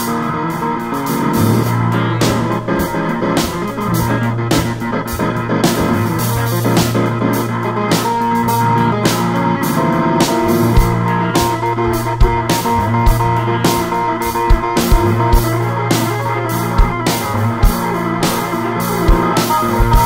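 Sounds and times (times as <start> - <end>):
live rock band playing: 0.0 - 20.0
drum hits: 1.2 - 7.2, 10.3 - 15.6, 19.1 - 20.0.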